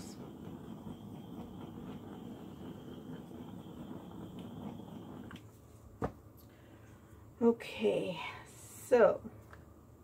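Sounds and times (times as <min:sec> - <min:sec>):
torch flame running: 0:00.0 - 0:05.5.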